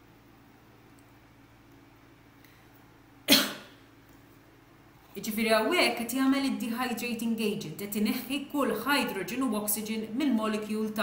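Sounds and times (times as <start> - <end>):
person coughing: 3.3 - 3.8.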